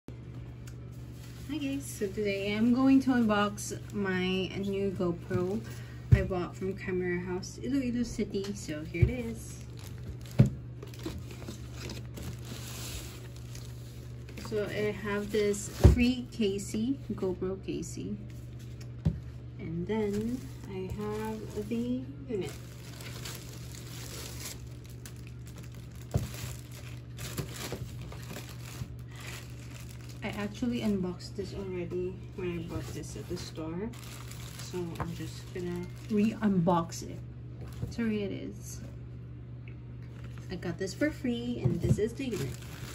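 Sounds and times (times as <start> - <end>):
steady low hum: 0.1 - 42.9
packaging crinkling and rustling: 0.8 - 5.9, 8.4 - 16.6, 20.0 - 36.6, 41.8 - 42.9.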